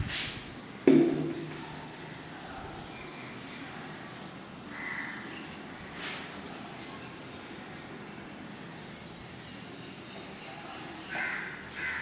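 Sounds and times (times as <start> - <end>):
crow cawing: 11.2 - 12.0.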